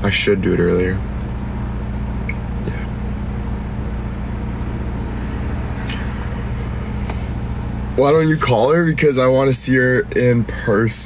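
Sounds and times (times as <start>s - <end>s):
car engine and road hum: 0.0s - 11.0s.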